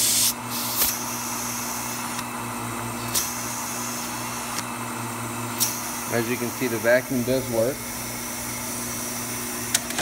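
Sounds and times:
vacuum pump humming: 0:00.0 - 0:10.0.

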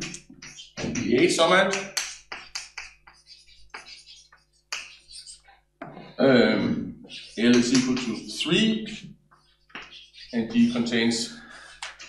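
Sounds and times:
chalk scratching on blackboard: 0:00.0 - 0:05.6, 0:07.0 - 0:08.7, 0:09.3 - 0:12.0
chalk tapping on blackboard: 0:00.0 - 0:06.0, 0:07.1 - 0:08.6, 0:09.3 - 0:12.0.

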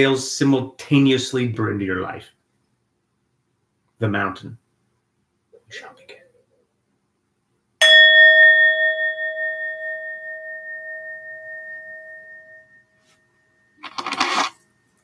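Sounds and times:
metal singing bowl ringing: 0:07.8 - 0:13.8.

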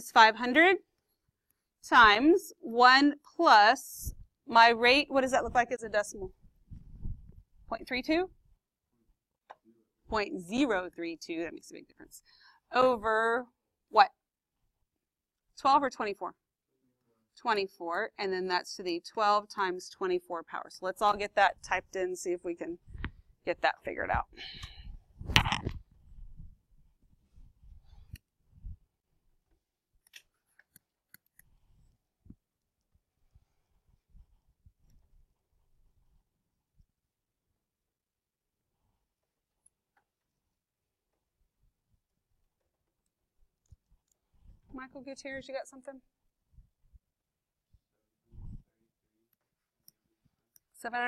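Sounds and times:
woman speaking: 0:00.0 - 0:00.8, 0:01.9 - 0:06.3, 0:07.7 - 0:08.3, 0:10.1 - 0:13.4, 0:15.6 - 0:16.4, 0:17.4 - 0:22.8, 0:23.5 - 0:24.4, 0:44.7 - 0:46.0, 0:50.8 - 0:51.0.

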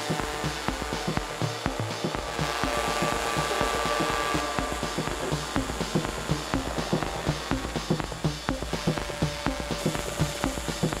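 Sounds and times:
percussive electronic beat: 0:00.0 - 0:11.0
sustained synth tones: 0:00.0 - 0:11.0.

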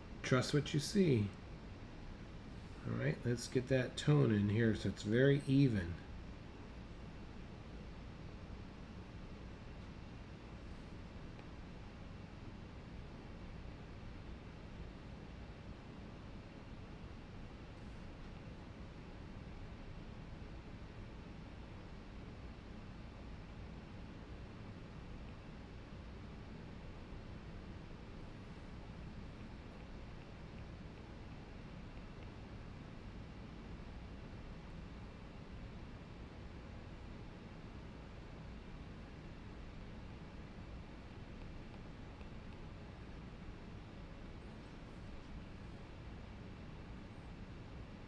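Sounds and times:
background hum and hiss: 0:00.0 - 0:48.0.

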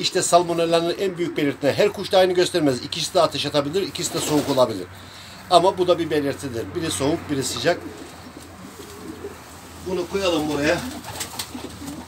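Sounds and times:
pigeons cooing: 0:06.7 - 0:12.0.

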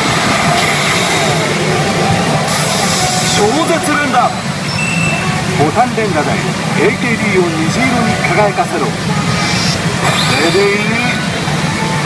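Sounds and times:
pachinko machine rushing effects: 0:00.0 - 0:06.0, 0:08.2 - 0:11.4.

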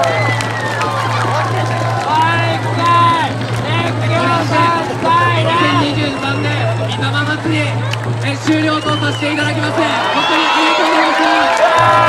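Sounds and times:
crowd noise: 0:00.0 - 0:12.0
shouted calls over loudspeaker: 0:00.0 - 0:12.0.

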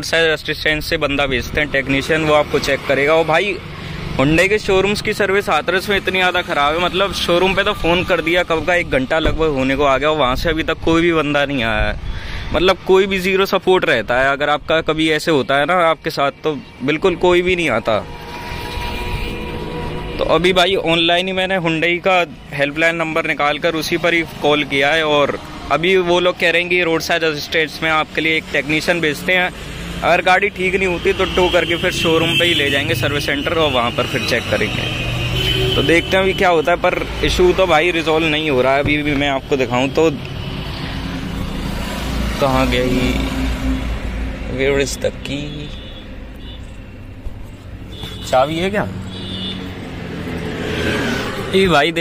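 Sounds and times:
road traffic passing: 0:00.0 - 0:52.0.

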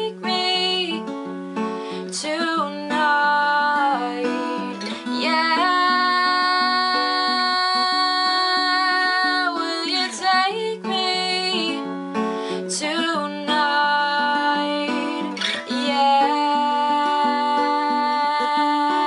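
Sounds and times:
acoustic guitar: 0:00.0 - 0:19.0
woman singing: 0:00.0 - 0:19.0.

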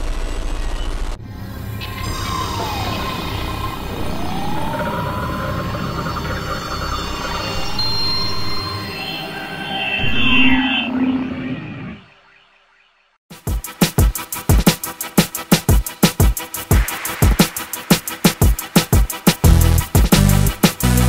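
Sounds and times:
swooping pitch sweeps: 0:01.3 - 0:12.3.

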